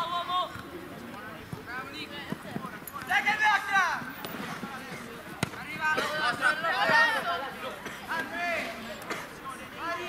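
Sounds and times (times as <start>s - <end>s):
players shouting: 1.7s - 10.0s.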